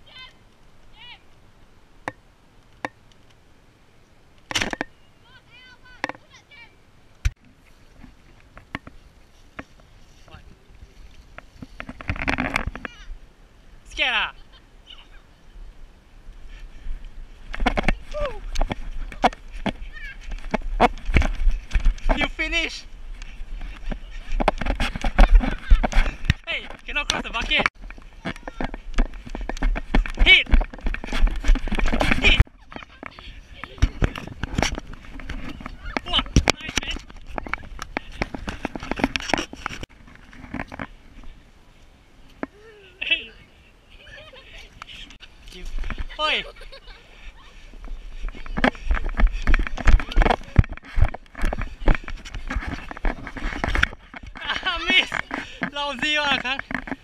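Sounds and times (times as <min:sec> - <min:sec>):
camera handling rumble and knocks: 0:11.3 - 0:12.9, 0:17.5 - 0:22.2, 0:23.3 - 0:40.9, 0:48.2 - 0:55.7, 0:56.3 - 0:57.0
laughter: 0:43.9 - 0:45.1, 0:46.1 - 0:47.6.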